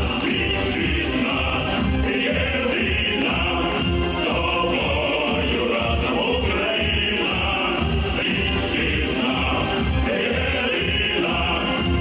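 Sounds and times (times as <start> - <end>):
backing music with bass beat: 0.0 - 12.0
male vocal group singing: 0.0 - 12.0.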